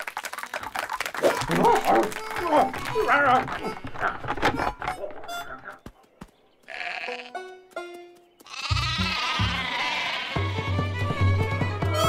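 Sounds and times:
cartoon sheep bleat: 0:06.7 - 0:07.4, 0:08.5 - 0:10.5.

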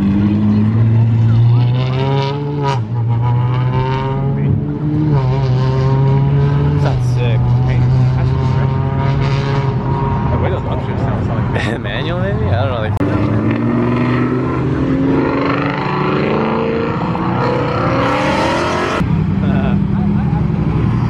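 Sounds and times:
car engines revving: 0:00.0 - 0:21.0.

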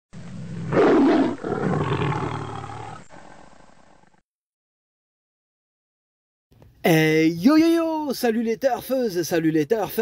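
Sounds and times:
animal roaring: 0:00.2 - 0:04.2.

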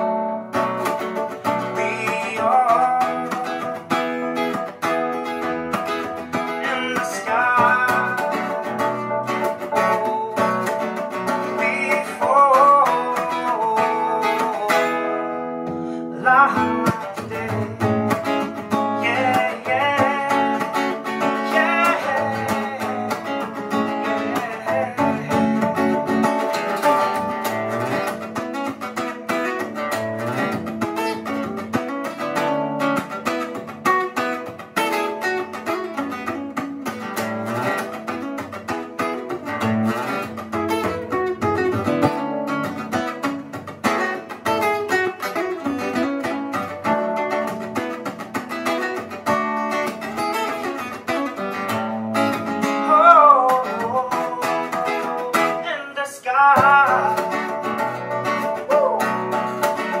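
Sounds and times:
sustained keyboard notes: 0:00.0 - 0:14.7, 0:16.8 - 0:51.0
acoustic guitar plucked and strummed: 0:00.0 - 1:00.0.

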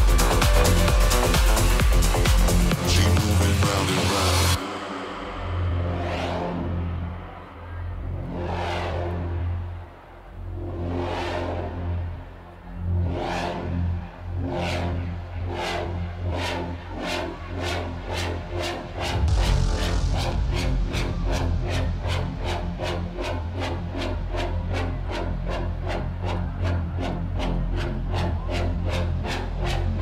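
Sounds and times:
whooshing synth swells: 0:18.9 - 0:23.9
held bass note: 0:19.0 - 0:24.0.

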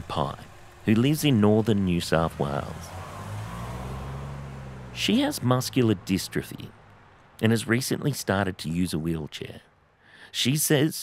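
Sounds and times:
car driving hum: 0:00.0 - 0:10.2.

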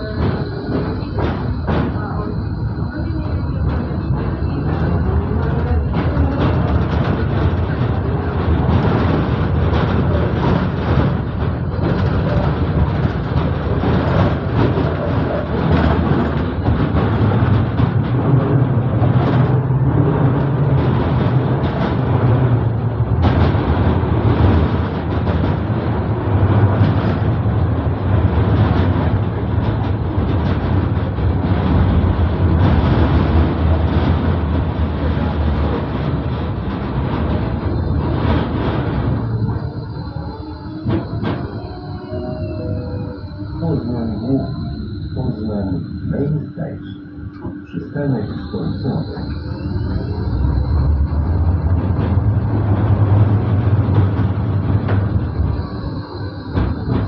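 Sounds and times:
tram traction drive hum: 0:00.0 - 0:57.0
wheels rumbling on rails: 0:00.0 - 0:57.0.

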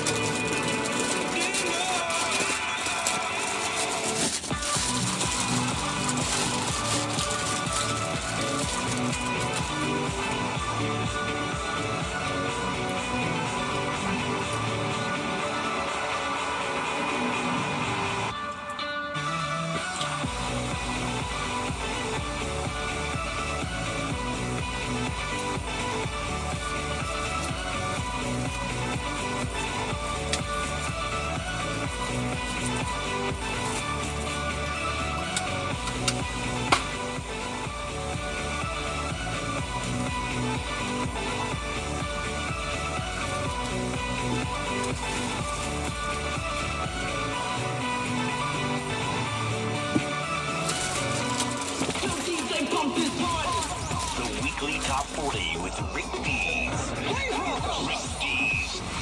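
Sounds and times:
pop song on radio: 0:00.0 - 0:59.0.

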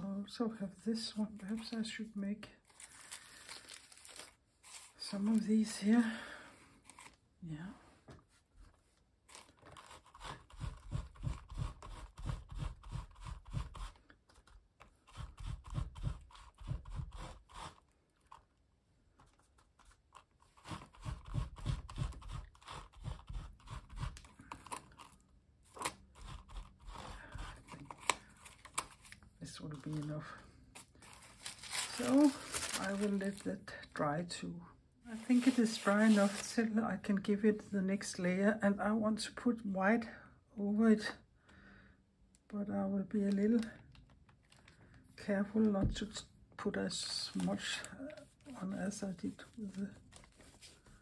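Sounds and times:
paper rustling: 0:02.6 - 0:05.5, 0:30.7 - 0:33.5, 0:35.2 - 0:36.6, 0:47.0 - 0:51.0.

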